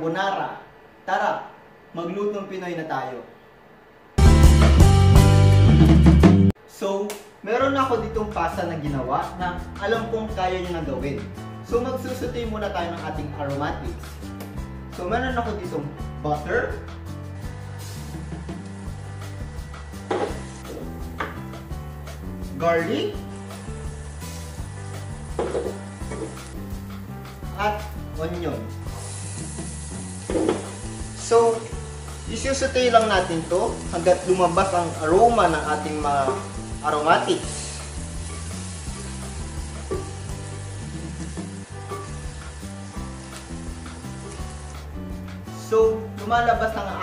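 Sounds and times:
background music: 4.2s - 6.6s, 7.5s - 47.0s
garlic sizzling in butter: 16.7s - 47.0s.

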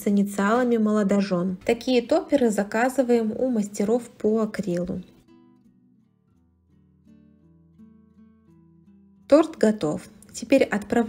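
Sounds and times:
plucked acoustic guitar: 5.0s - 11.0s.

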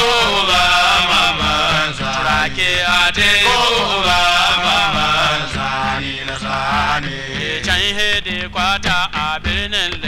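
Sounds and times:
chanted singing: 0.0s - 8.0s.

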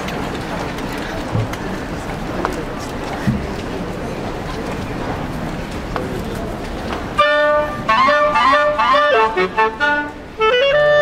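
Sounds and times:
murmur of outdoor crowd: 0.0s - 11.0s
flute and clarinet ensemble: 7.2s - 11.0s.

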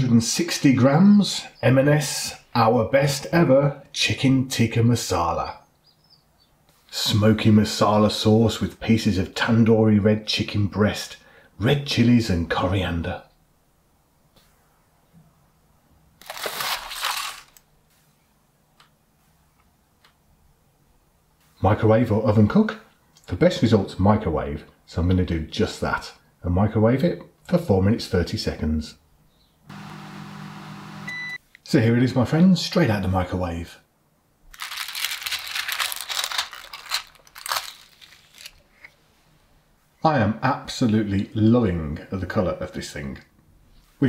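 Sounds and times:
cardboard packaging rustling: 16.2s - 17.7s, 34.5s - 39.0s
plastic film crinkling and tearing: 16.2s - 17.7s, 34.5s - 38.9s.

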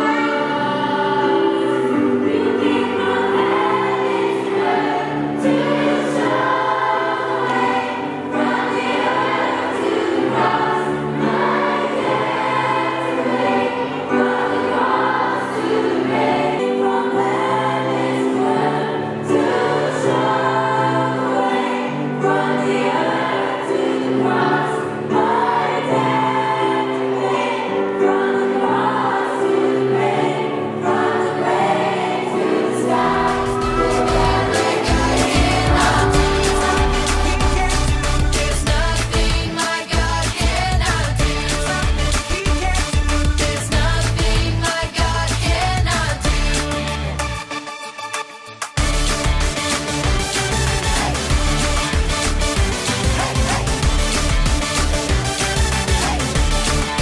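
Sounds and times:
children singing: 0.0s - 41.8s
women singing worship song: 0.0s - 41.8s
instrumental accompaniment with bass: 32.9s - 47.5s, 48.8s - 57.0s.

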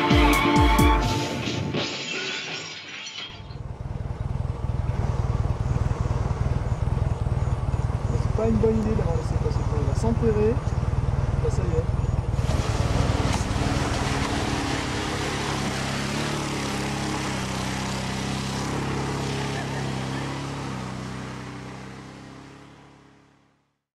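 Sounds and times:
truck engine revving hard: 12.2s - 23.4s.

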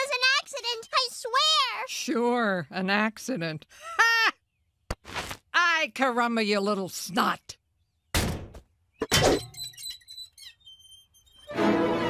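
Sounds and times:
sharp thunk: 8.1s - 9.4s.

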